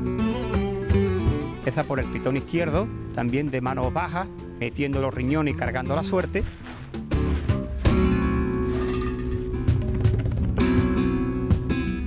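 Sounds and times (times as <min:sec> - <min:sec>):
flamenco acoustic guitar strumming: 0:00.0 - 0:03.2, 0:05.4 - 0:12.0.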